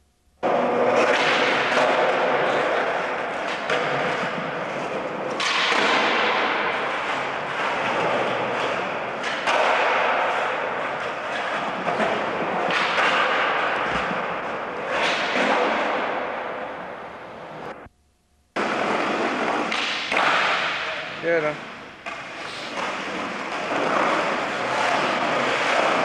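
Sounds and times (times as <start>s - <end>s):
skateboard wheels rolling on concrete: 0.4s - 17.9s, 18.6s - 26.0s
skateboard knocking: 0.4s - 20.7s.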